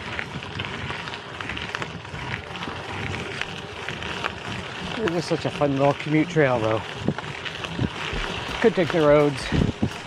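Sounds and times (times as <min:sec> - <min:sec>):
bicycle tyres crunching on gravel: 0:00.0 - 0:10.0
bike clicks and rattles: 0:00.0 - 0:10.0.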